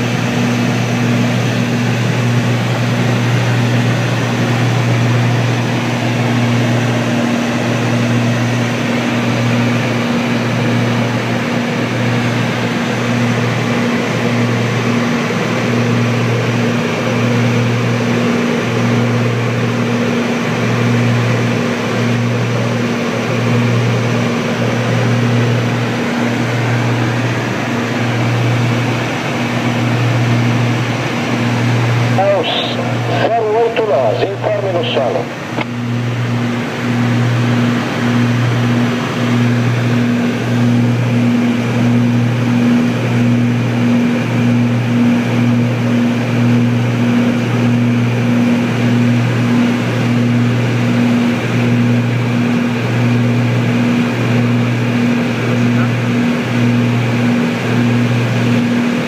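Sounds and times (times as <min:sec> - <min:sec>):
aircraft engines droning in cabin: 0:00.0 - 0:59.0.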